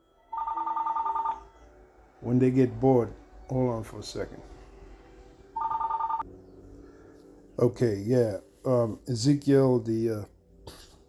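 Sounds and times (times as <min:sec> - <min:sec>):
electronic phone ring tone: 0:00.2 - 0:01.7, 0:05.6 - 0:06.3.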